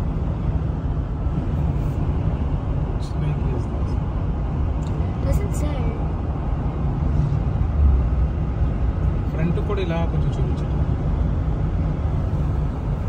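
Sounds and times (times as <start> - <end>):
car road noise rumble: 0.0 - 13.0.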